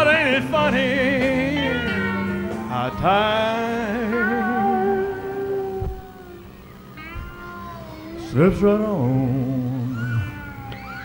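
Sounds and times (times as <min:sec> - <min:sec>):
band holding a chord: 0:00.0 - 0:10.0
backing singers high sustained note: 0:00.0 - 0:11.0.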